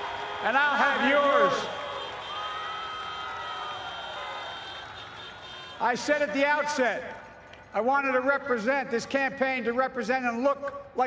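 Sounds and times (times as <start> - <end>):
distant crowd cheering: 0.0 - 6.3
car horns honking: 0.7 - 6.3.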